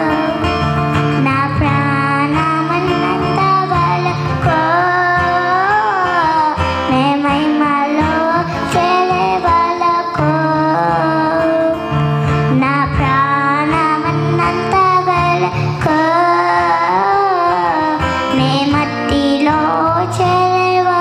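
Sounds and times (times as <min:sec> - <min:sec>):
girl singing into a microphone: 0:00.0 - 0:21.0
instrumental accompaniment with bass: 0:00.0 - 0:21.0.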